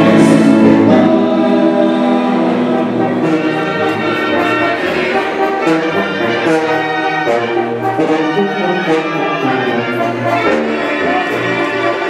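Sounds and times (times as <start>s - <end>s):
choir singing sustained notes: 0.0s - 12.0s.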